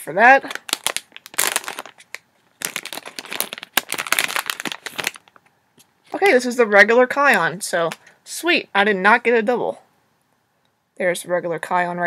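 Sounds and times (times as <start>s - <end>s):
foil packet crinkling and tearing: 0.0s - 5.4s.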